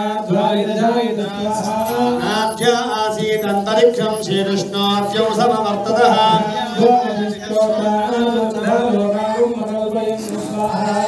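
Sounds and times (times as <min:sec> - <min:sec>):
man chanting into microphone: 0:00.0 - 0:11.0.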